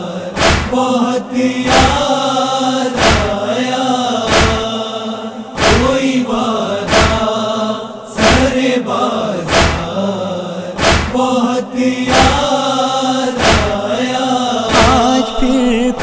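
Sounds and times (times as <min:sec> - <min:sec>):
men chanting a lament: 0:00.0 - 0:16.0
chest-beating strikes: 0:14.7 - 0:16.0.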